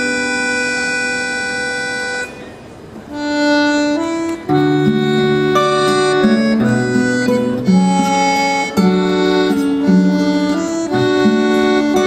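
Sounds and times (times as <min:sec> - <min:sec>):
accordion chord: 0:00.0 - 0:12.0.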